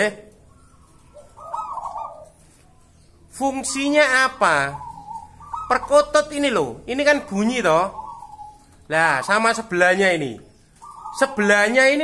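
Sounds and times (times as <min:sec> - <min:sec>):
dove cooing: 0:00.3 - 0:09.8, 0:10.6 - 0:12.0.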